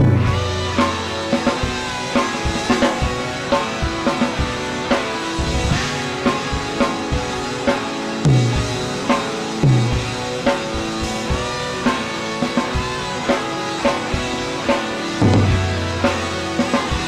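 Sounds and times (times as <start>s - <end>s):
drum kit playing: 0.0s - 17.0s
rock backing track with guitar: 0.0s - 17.0s.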